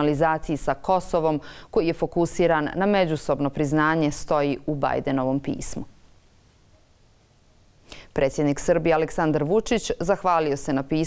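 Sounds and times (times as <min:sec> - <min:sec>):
woman speaking: 0:00.0 - 0:06.0, 0:08.1 - 0:11.0
faint even hiss: 0:03.7 - 0:10.4.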